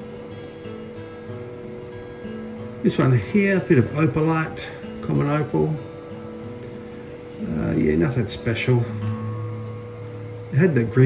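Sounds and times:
quiet instrumental music: 0.0s - 11.0s.

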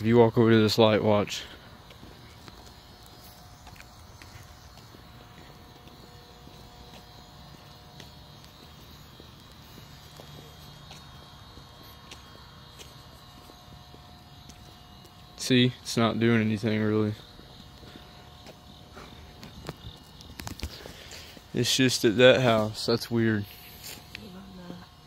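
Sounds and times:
faint high steady tones: 0.0s - 25.0s
footsteps on pavement: 0.0s - 25.0s
low background hum: 0.0s - 25.0s.

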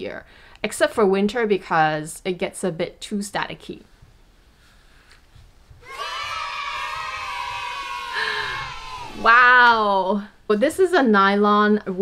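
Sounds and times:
children cheering: 5.8s - 9.8s.

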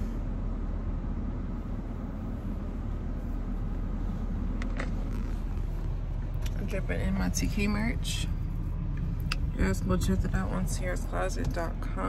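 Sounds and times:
car cabin low rumble: 0.0s - 12.0s.

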